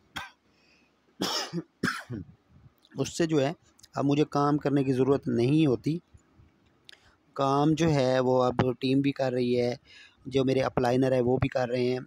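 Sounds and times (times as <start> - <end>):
man coughing: 1.2 - 2.3.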